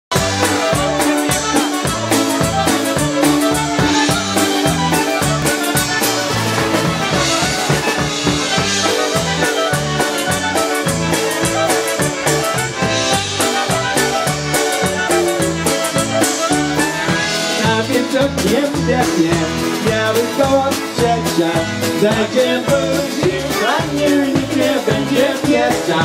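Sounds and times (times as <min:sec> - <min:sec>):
clarinets playing melody: 0:00.1 - 0:17.6
bouncing bass beat: 0:00.1 - 0:26.0
concertina: 0:00.1 - 0:26.0
drum kit: 0:00.1 - 0:26.0
electric keyboard: 0:00.1 - 0:26.0
guitar: 0:00.1 - 0:26.0.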